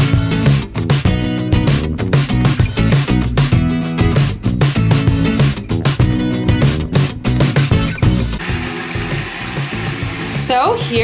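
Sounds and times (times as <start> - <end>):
background music: 0.0 - 11.0
tap water running into sink: 8.4 - 11.0.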